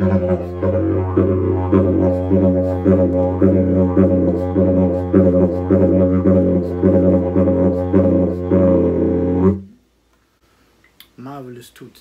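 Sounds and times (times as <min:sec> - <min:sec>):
didgeridoo drone: 0:00.0 - 0:09.8.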